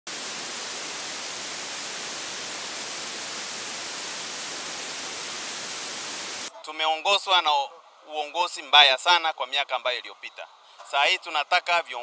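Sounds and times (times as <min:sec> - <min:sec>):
static hiss: 0:00.0 - 0:06.5.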